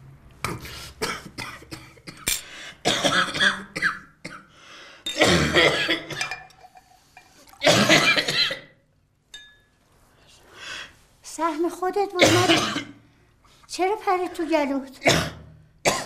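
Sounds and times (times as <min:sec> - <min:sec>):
man coughing hard: 0:02.9 - 0:04.4, 0:05.2 - 0:06.3, 0:07.6 - 0:08.7, 0:12.2 - 0:13.0, 0:15.1 - 0:16.0.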